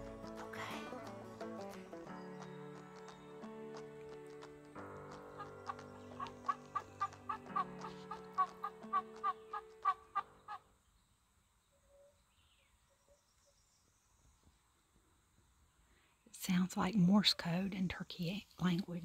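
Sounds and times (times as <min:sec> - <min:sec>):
background music with held chords: 0:00.0 - 0:09.9.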